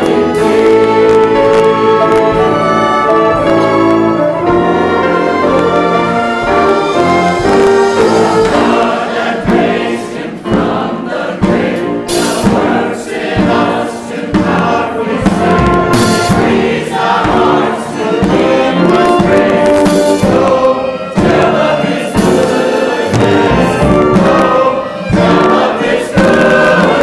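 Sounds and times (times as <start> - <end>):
choir singing a hymn: 0.0 - 27.0
orchestra of strings and brass: 0.0 - 27.0.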